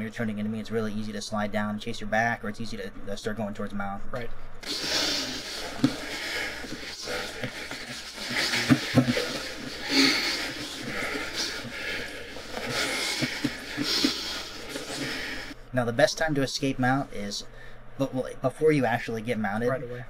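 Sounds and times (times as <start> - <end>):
breathing: 4.6 - 15.6, 17.5 - 18.0
indistinct voices: 4.6 - 15.6.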